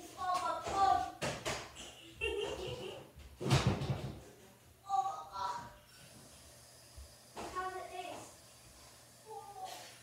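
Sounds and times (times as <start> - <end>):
child's voice: 0.0 - 1.2, 4.8 - 5.8, 7.4 - 8.4, 9.3 - 10.0.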